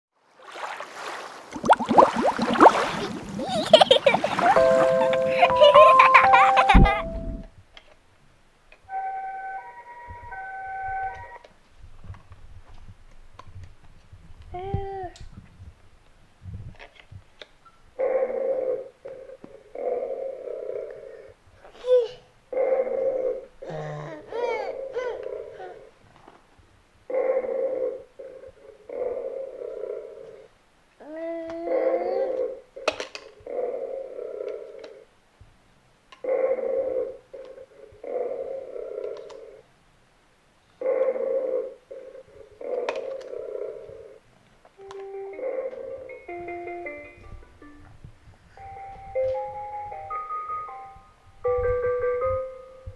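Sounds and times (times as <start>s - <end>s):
toy electronic tones: 4.6s - 7.4s, 8.9s - 11.4s.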